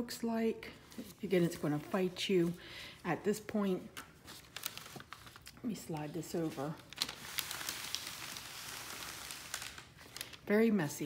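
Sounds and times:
paper crinkles: 0.8s - 10.6s.

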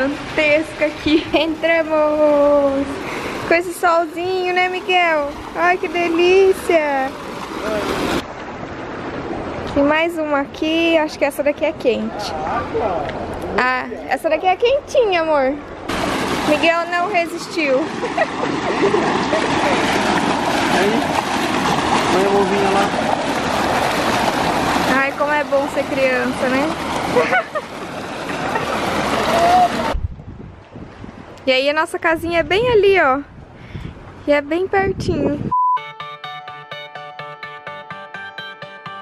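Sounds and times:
pool water jet churning: 0.0s - 30.0s.

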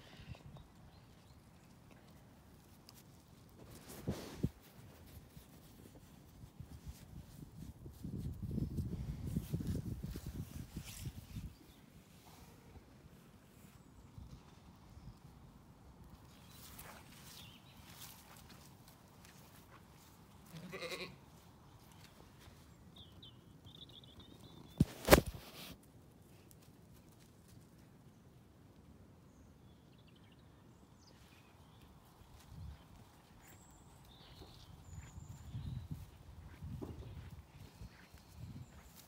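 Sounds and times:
wool rubbing against microphone: 3.6s - 11.6s
sheep bleating: 20.4s - 21.2s.

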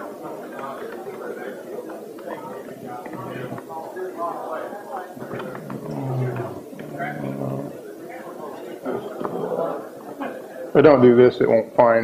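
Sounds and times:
man mumbling: 2.8s - 3.6s, 5.2s - 7.8s.

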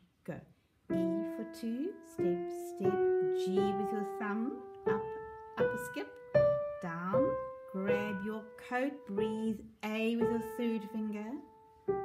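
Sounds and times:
person speaking: 0.0s - 11.5s
grand piano slow melody: 0.9s - 12.0s.

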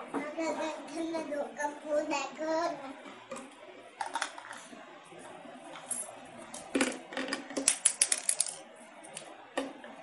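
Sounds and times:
plastic figurines clicking on floor: 6.8s - 8.6s.

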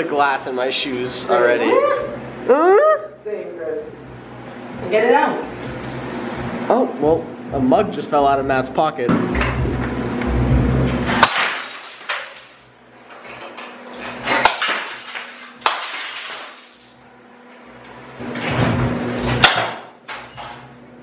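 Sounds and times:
glassware smashed with bat: 11.1s - 12.8s, 13.4s - 17.0s, 19.4s - 20.5s.

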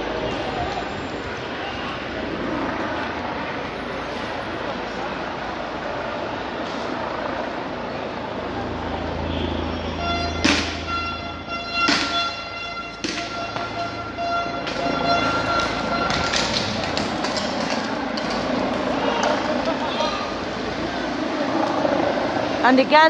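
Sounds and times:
crowd and street noise: 0.0s - 23.0s
steady horn-like tone: 8.5s - 16.7s.

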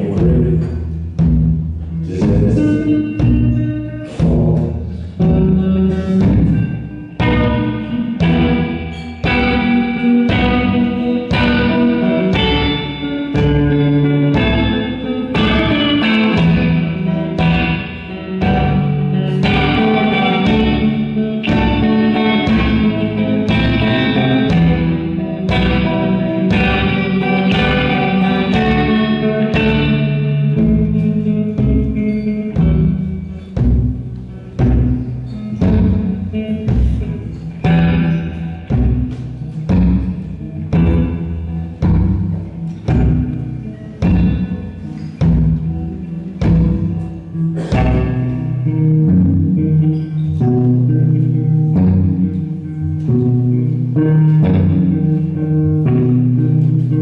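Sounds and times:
guitar playing rhythm: 0.0s - 57.0s
low drum beat: 0.0s - 57.0s.

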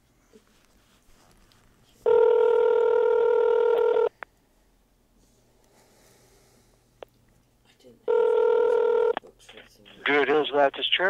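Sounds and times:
telephone ringback tone: 2.1s - 4.1s, 8.1s - 9.2s.

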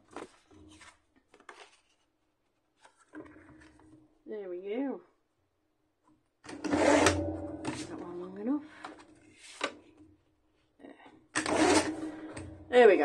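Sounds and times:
paper trimmer blade cutting card: 6.5s - 7.9s, 11.4s - 12.5s.

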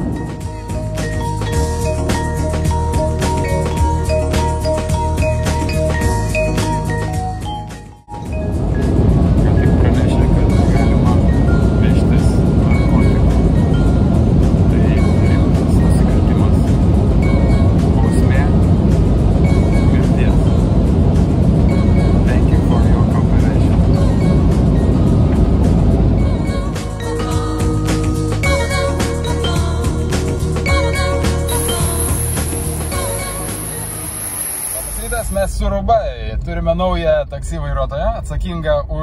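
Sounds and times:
jet cabin rumble: 0.0s - 6.3s, 8.1s - 27.8s, 31.0s - 39.0s
person speaking: 34.8s - 35.8s.

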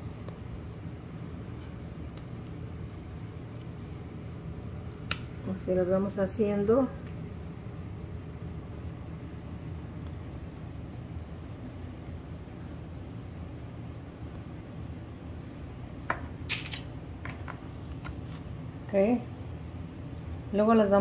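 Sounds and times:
appliance humming: 0.0s - 21.0s.

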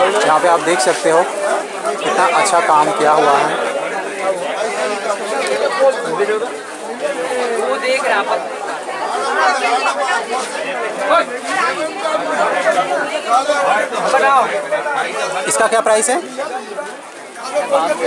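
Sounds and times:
people talking at once: 0.0s - 18.0s.

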